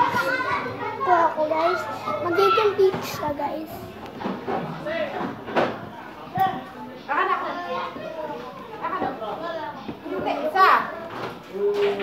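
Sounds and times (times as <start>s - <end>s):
child speaking and vocalising: 0.0s - 3.8s.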